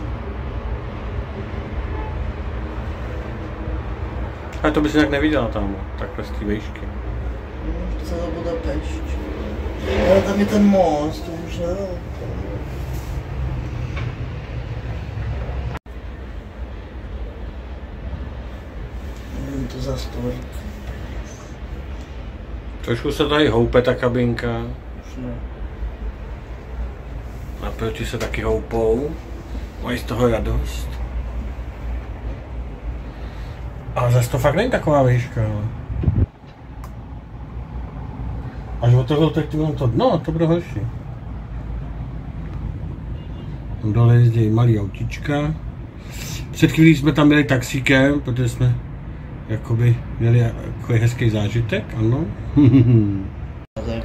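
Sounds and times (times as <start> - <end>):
low rumble and hiss in cabin: 0.0 - 42.9.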